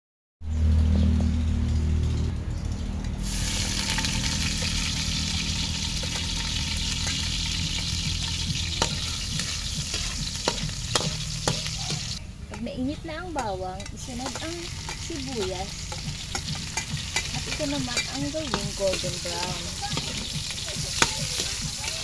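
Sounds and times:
low hum: 0.4 - 20.7
garlic sizzling in hot oil: 3.2 - 22.0
metal spoon clinking on wok: 5.9 - 12.7, 13.4 - 22.0.

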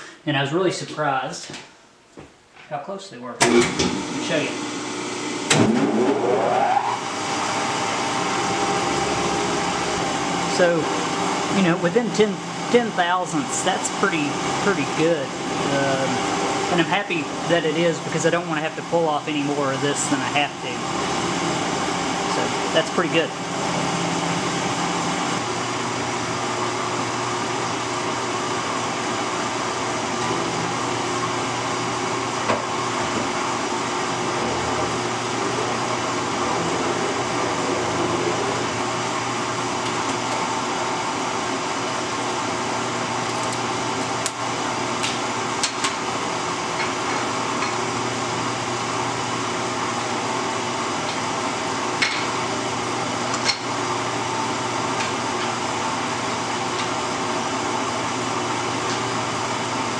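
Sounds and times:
electric machine hum: 3.4 - 59.9.

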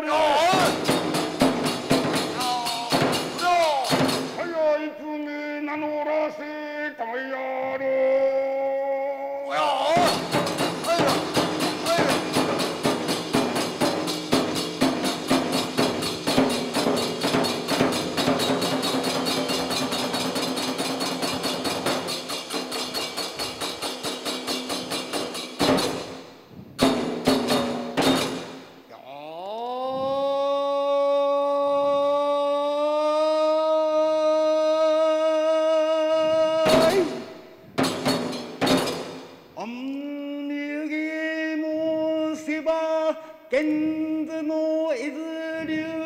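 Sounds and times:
taiko drum and hand cymbals: 0.1 - 4.6, 9.6 - 28.9, 36.6 - 39.6.

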